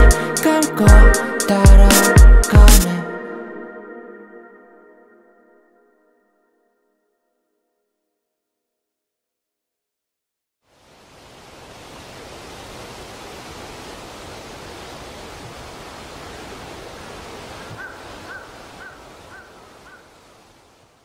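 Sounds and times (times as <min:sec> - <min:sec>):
outdoor wind: 0:10.7 - 0:21.0.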